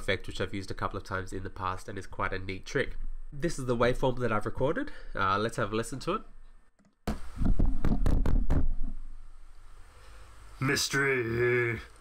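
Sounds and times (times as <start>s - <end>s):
microphone handling knocks: 7.0s - 9.0s.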